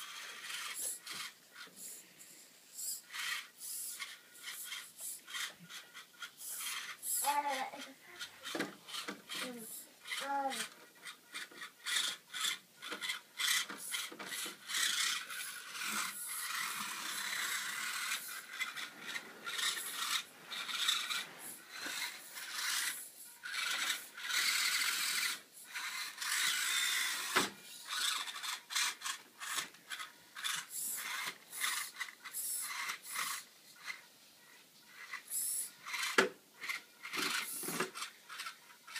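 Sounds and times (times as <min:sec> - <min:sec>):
small electric motor and gears buzzing: 0:00.0 - 0:38.9.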